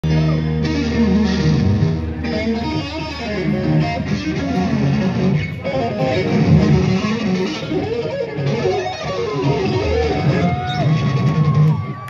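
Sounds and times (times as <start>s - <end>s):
electric guitars trading lead phrases: 0.0s - 12.0s.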